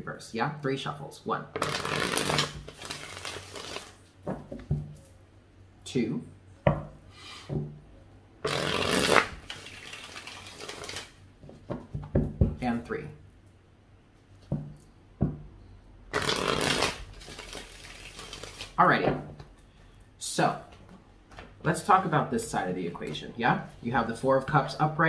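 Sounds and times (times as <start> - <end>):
cards shuffling: 1.6 - 4.0, 8.4 - 11.6, 16.1 - 18.8.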